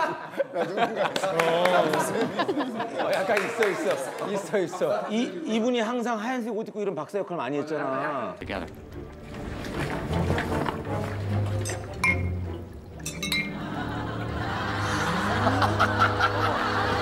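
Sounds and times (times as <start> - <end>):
laughter: 0.0 - 5.6, 13.5 - 17.0
ringing glass clinks: 11.6 - 12.4, 13.0 - 13.6.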